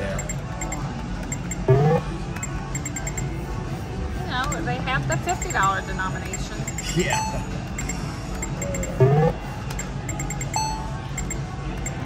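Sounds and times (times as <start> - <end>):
short electronic beep: 6.3 - 12.0
rapid short electronic ticks: 7.8 - 10.6.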